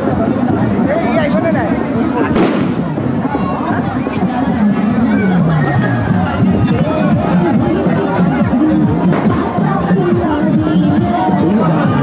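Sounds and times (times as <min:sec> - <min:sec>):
crowd chatter: 0:00.0 - 0:12.0
firecracker bang: 0:02.3 - 0:03.2.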